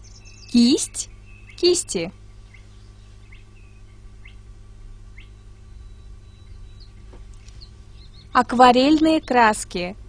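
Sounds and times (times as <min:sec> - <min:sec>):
faint bird chirps: 0:00.0 - 0:04.5, 0:05.1 - 0:09.8
steady low hum: 0:00.0 - 0:10.0.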